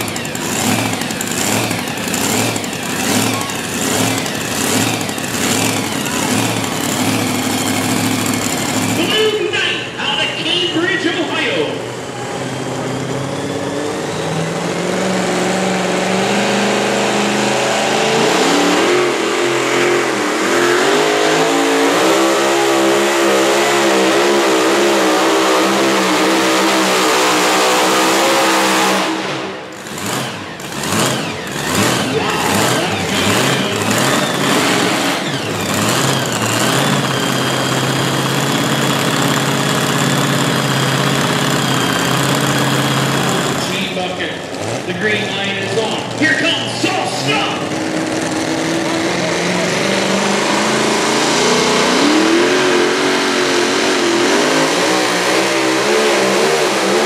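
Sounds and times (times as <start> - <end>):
engine idling with high whine: 0.0 - 57.0
engine throttle blips: 0.0 - 57.0
supercharged engine at full throttle: 0.0 - 57.0.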